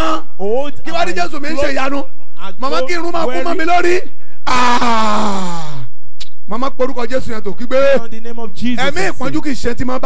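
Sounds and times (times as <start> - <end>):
man wailing into a microphone: 4.5 - 5.9.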